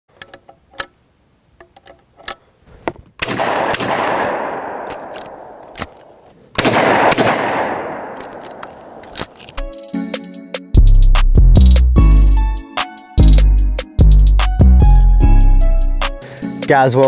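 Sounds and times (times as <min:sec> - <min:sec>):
shotgun shells loading clicks: 0:00.1 - 0:01.0, 0:01.6 - 0:02.4, 0:04.8 - 0:06.2, 0:07.8 - 0:09.7
shotgun shots with echo: 0:03.2 - 0:05.7, 0:06.6 - 0:09.1.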